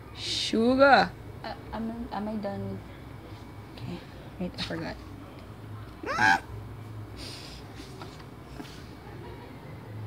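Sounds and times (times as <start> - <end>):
short high cry: 6.0 - 6.5.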